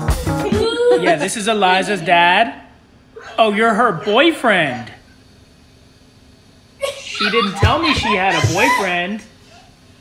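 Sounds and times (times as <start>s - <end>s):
faint hum and hiss: 0.0s - 10.0s
person speaking: 7.2s - 9.2s.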